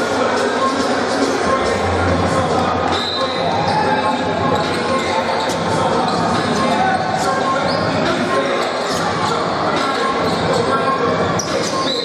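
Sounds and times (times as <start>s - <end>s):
crowd chatter: 0.0s - 12.0s
shoe squeaks and clicks: 2.9s - 12.0s.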